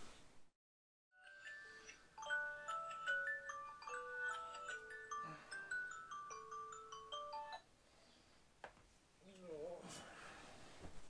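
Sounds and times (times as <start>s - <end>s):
chiming phone ringtone melody: 1.2s - 7.7s.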